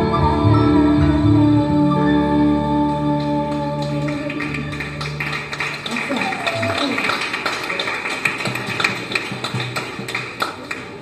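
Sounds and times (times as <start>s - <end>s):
plucked double bass: 0.0s - 5.6s
jazz combo playing: 0.0s - 6.0s
sharp handclaps: 3.8s - 11.0s.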